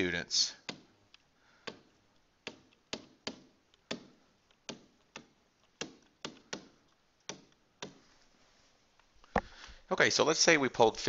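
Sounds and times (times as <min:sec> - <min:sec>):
stylus tapping on tablet screen: 0:01.6 - 0:08.0.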